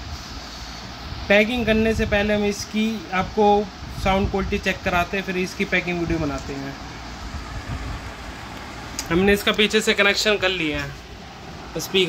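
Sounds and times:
even hiss: 0:00.0 - 0:12.0
low rumbling background noise: 0:00.0 - 0:12.0.

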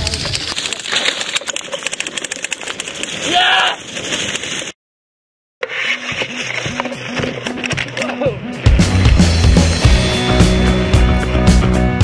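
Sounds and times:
rock band with drums: 0:06.9 - 0:12.0.

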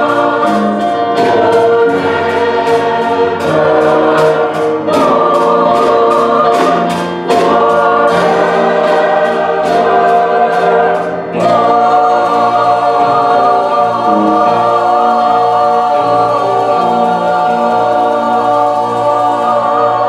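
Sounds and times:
choir singing in harmony: 0:00.0 - 0:20.0
steady ticking beat: 0:00.0 - 0:20.0.

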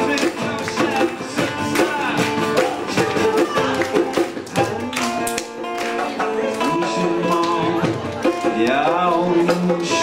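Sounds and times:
strummed acoustic guitar music: 0:00.0 - 0:10.0.

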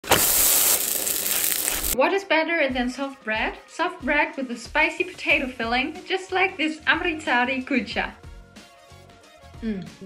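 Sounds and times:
flatbread sizzling on a hot pan: 0:00.0 - 0:02.0.

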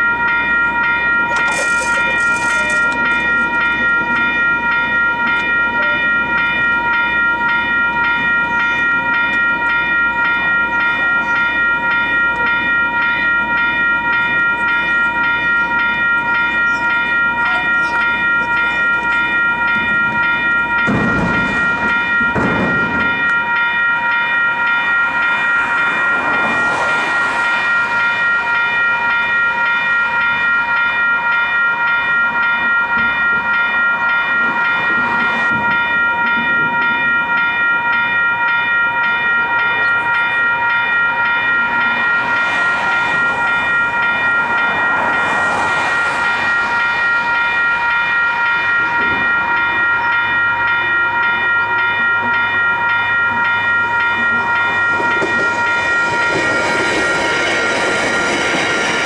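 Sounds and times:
level crossing bells ringing: 0:00.0 - 0:59.0.

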